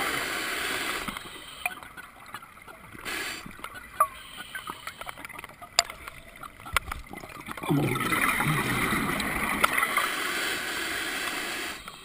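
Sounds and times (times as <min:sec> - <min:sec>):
small clicks: 0:03.6 - 0:07.2
underwater exhalation bubbles: 0:07.1 - 0:10.0.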